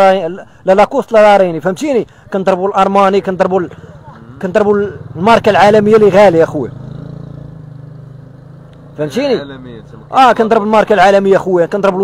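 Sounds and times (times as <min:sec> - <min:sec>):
vehicle engine humming: 0:02.0 - 0:12.0.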